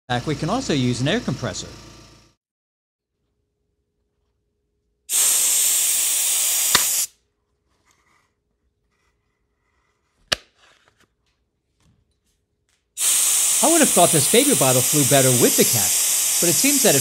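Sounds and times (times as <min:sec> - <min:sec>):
air blow gun hissing: 0:05.1 - 0:07.1, 0:13.0 - 0:17.0.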